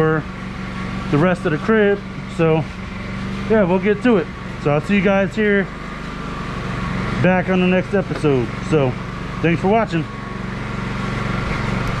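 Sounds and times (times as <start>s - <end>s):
electric motor humming: 0.0s - 12.0s.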